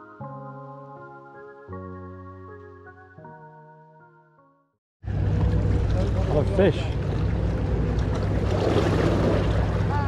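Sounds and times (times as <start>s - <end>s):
motorboat engine drone: 5.0s - 10.0s.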